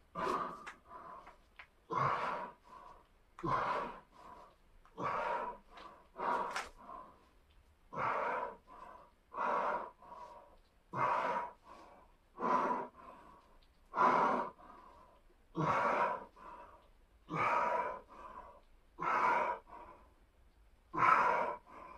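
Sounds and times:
man breathing hard: 0:00.0 - 0:21.9.

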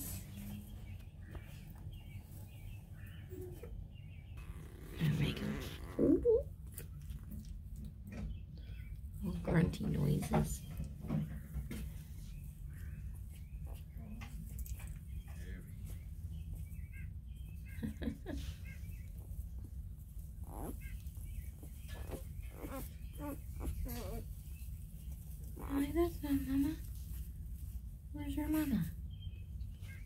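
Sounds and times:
puppies grunting: 0:03.0 - 0:07.0, 0:20.2 - 0:24.6
puppies squeaking: 0:04.3 - 0:06.6, 0:20.4 - 0:24.8.

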